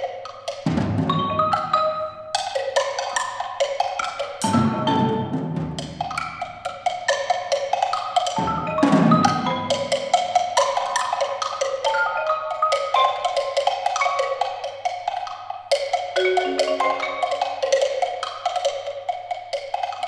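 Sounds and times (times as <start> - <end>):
mallet percussion runs: 0.8 - 2.3, 4.4 - 6.5, 8.4 - 10.7, 11.9 - 14.3, 16.2 - 18.2.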